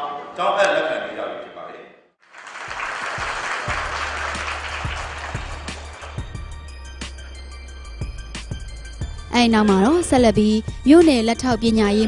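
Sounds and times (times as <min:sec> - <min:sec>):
audience applauding: 0:02.2 - 0:07.4.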